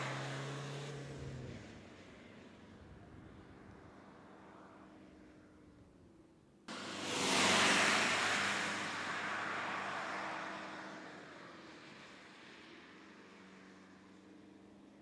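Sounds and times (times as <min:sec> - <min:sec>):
car driving past: 0:06.7 - 0:14.2.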